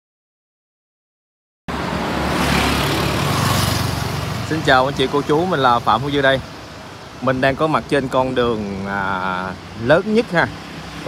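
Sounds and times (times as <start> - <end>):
car passing on paved road: 1.7 - 11.0.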